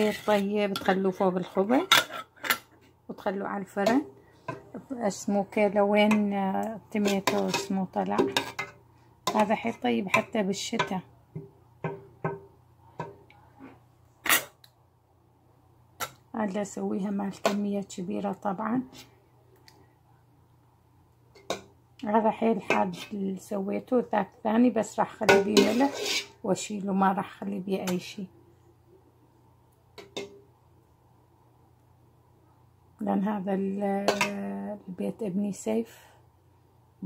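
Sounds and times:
faint steady hum: 0:00.0 - 0:37.0
metal ladle clinking on pot: 0:34.1 - 0:34.4.

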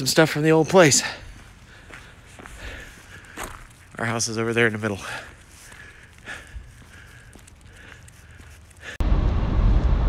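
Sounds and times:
footsteps on paved street: 0:00.0 - 0:09.0.

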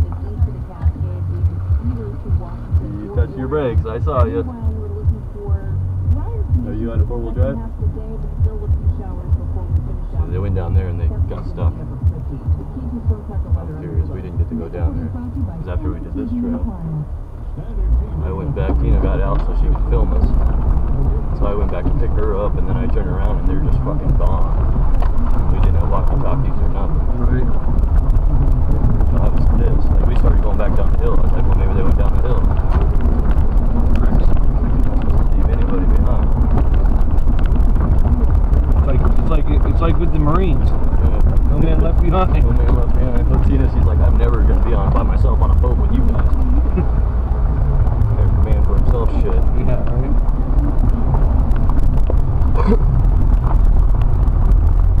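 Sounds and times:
people talking: 0:00.0 - 0:36.9, 0:37.6 - 0:52.9
car engine and road rumble: 0:00.0 - 0:55.0.

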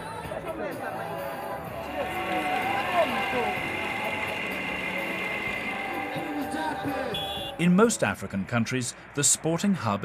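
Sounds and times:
cotton candy machine motor hum: 0:01.8 - 0:07.4.

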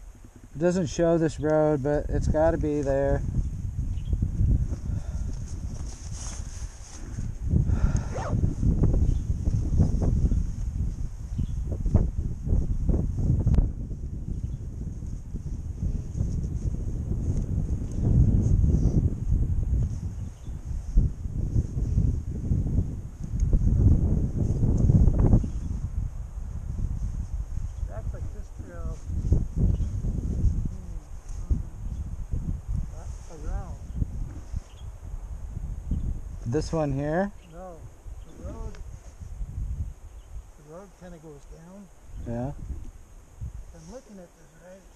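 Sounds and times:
wind buffeting microphone: 0:00.0 - 0:44.9
faint high hiss: 0:40.0 - 0:44.9.

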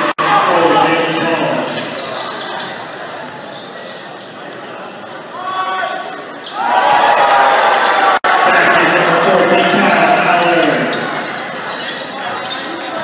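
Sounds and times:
crowd noise: 0:00.0 - 0:13.0
fans shouting: 0:05.3 - 0:11.6.

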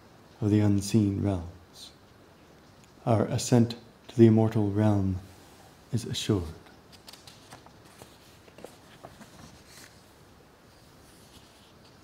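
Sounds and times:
paper rustling: 0:06.9 - 0:12.0.

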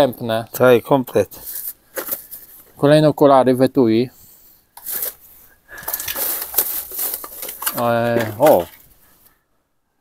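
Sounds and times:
plastic bags and paper rustling: 0:01.4 - 0:02.8, 0:04.8 - 0:09.3
small clicks of objects shifting: 0:04.8 - 0:08.9.

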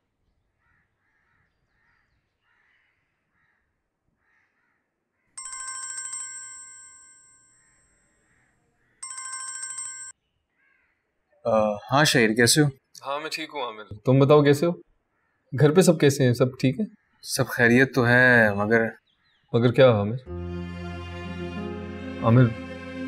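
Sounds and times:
mobile phone ringtone: 0:05.4 - 0:07.6, 0:09.0 - 0:10.2.

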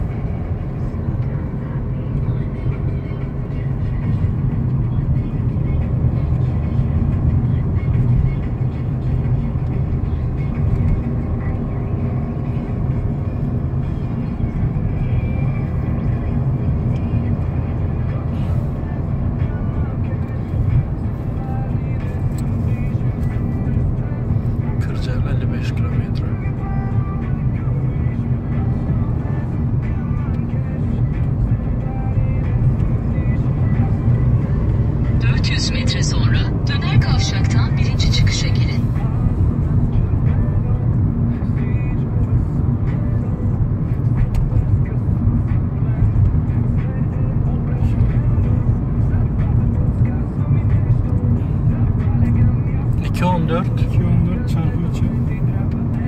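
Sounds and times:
car engine and road drone: 0:00.0 - 0:56.0.

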